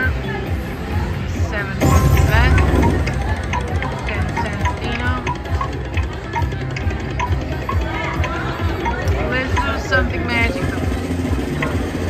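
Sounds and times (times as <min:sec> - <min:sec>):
game music: 0:01.6 - 0:12.0
slot machine sweeping tones: 0:01.7 - 0:12.0
wheel ticking: 0:01.8 - 0:12.0.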